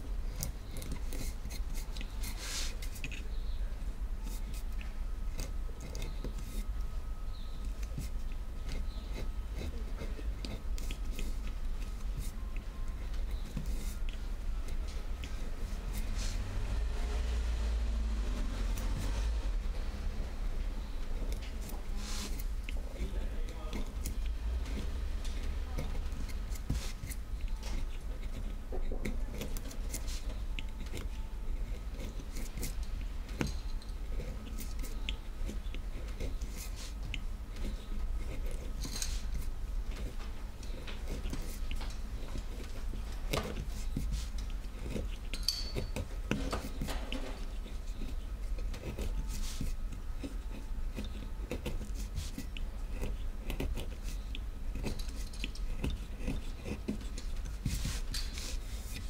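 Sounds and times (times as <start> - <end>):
low hum: 3.0 - 23.1
chisel cutting wood: 54.7 - 57.1.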